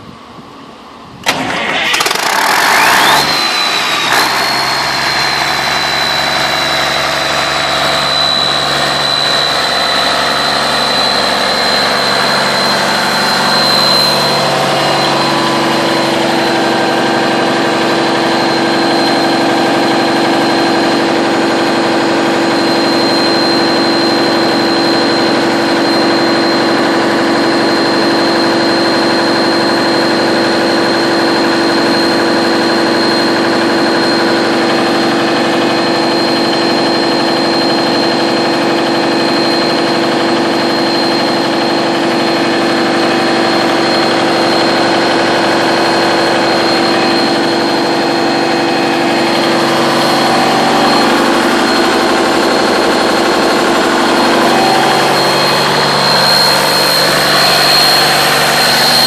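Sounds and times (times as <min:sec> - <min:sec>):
diesel generator starting and running: 0:00.0 - 0:59.0
high whine: 0:00.0 - 0:59.0.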